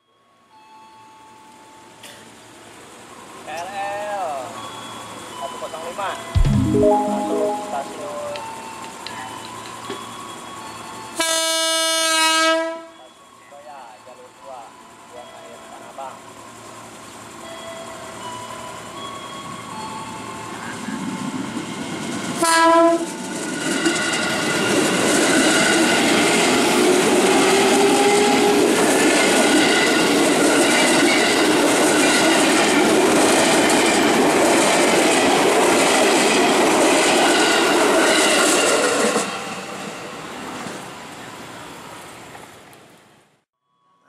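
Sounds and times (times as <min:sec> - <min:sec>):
train horn blast: 0:11.2 - 0:12.9, 0:22.4 - 0:23.1
train wheels rushing on rails: 0:21.1 - 0:40.9.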